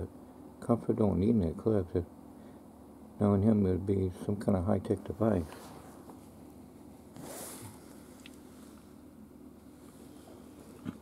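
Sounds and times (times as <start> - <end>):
faint low hum: 0.0 - 11.0
soft rustle: 5.0 - 9.0, 9.6 - 11.0.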